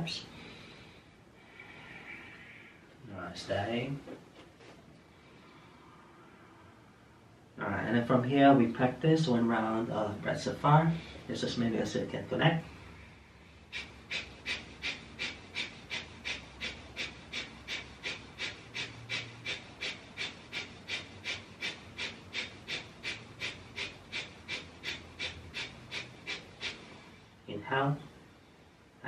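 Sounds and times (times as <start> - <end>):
rapid rhythmic breathing: 10.5 - 11.9, 12.6 - 29.0.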